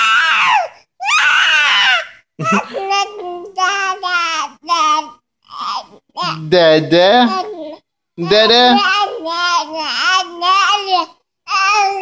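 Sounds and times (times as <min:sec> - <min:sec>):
baby wailing: 0:00.0 - 0:06.5, 0:07.2 - 0:12.0.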